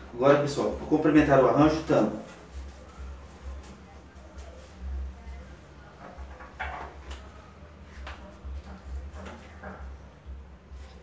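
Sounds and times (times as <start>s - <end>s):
flower stems rustling: 0.8s - 9.9s.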